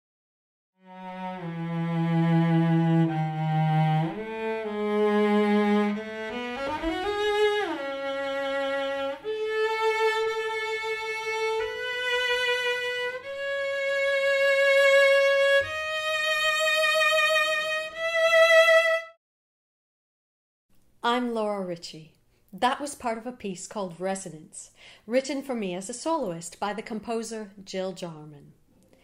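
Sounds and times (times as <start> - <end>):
solo cello melody: 0.8 - 19.2.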